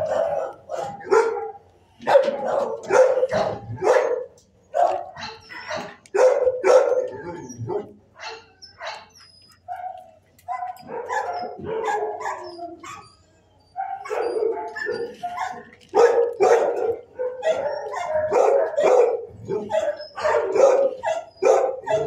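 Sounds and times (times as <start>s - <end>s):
dogs barking: 0.0s - 22.0s.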